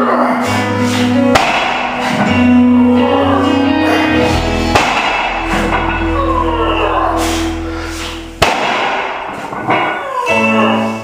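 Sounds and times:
background music: 0.0s - 11.0s
barbell plates thudding on wood: 4.8s - 6.0s, 8.4s - 10.1s.

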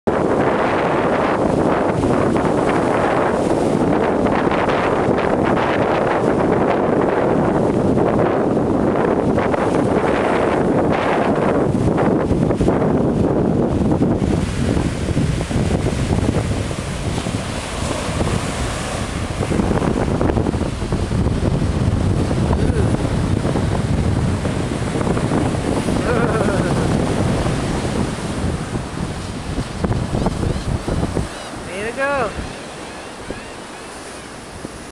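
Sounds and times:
ocean surf breaking: 0.1s - 34.9s
wind buffeting microphone: 0.1s - 34.9s.

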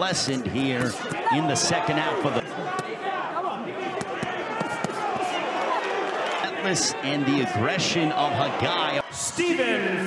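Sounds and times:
crowd voices and shouts: 0.0s - 10.0s.

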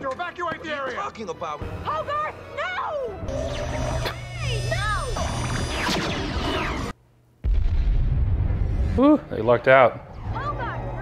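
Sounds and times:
explosions rumbling: 7.4s - 9.0s.

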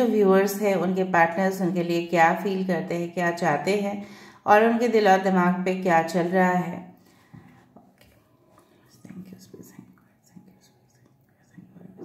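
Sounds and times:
woman murmuring quietly: 8.6s - 12.0s.

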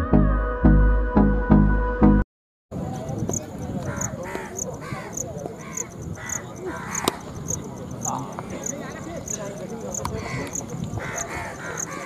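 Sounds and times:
faint voices: 2.8s - 12.0s
crow cawing: 3.8s - 8.3s, 9.2s - 12.0s.

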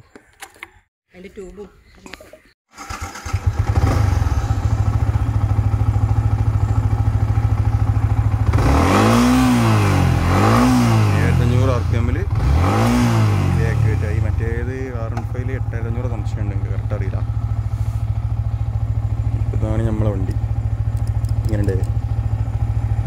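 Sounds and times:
motorcycle engine revving: 2.7s - 23.0s
motorcycle engine idling: 2.8s - 12.4s, 13.8s - 23.0s.

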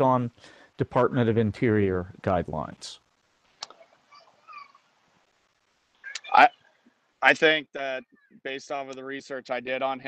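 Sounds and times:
high-pitched animal call: 3.8s - 4.9s.

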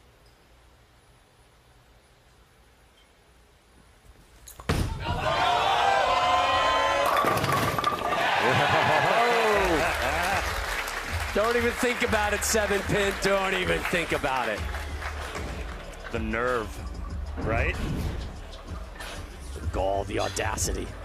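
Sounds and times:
bowling ball hitting pins: 6.8s - 9.2s
pins clattering: 7.0s - 8.9s
men laughing and talking: 8.2s - 10.6s.

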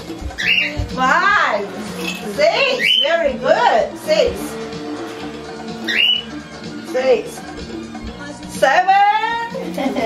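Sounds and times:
song from tape player: 0.0s - 10.0s
cockatiel rising call: 5.8s - 6.4s.

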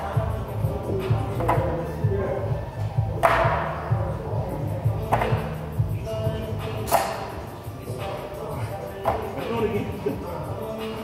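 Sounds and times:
background music with beat: 0.0s - 11.0s.

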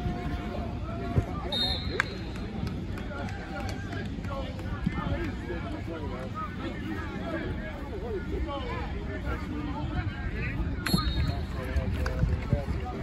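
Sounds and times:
people talking and calling out: 0.0s - 13.0s.

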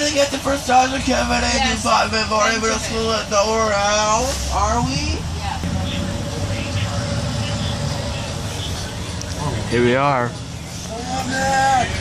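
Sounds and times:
bus engine rumble: 0.0s - 12.0s
road noise: 0.0s - 12.0s.

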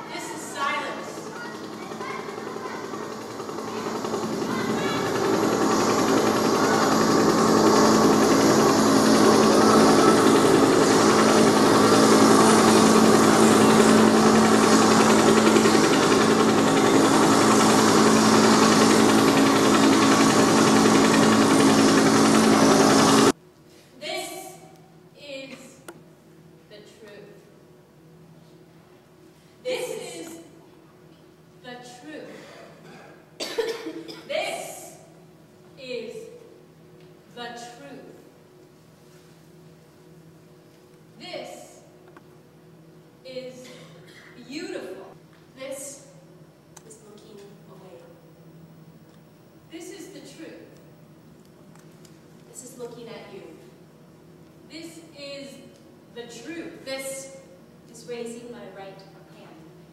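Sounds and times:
loud dense mechanical roar: 0.0s - 23.4s
steady low hum: 0.0s - 59.9s
person coughing: 32.3s - 34.4s.

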